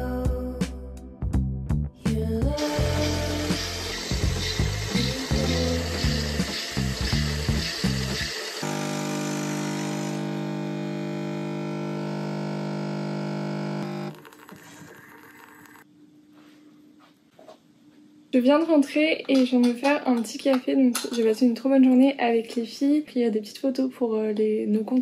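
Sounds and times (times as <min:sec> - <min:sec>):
background music: 0:00.0 - 0:08.3
coffee machine pump buzzing: 0:02.6 - 0:15.9.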